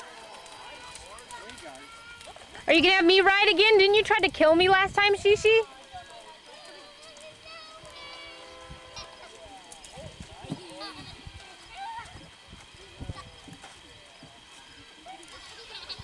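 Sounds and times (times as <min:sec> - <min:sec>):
children squealing and calling out: 0:00.0 - 0:02.6, 0:05.7 - 0:13.6, 0:14.6 - 0:16.0.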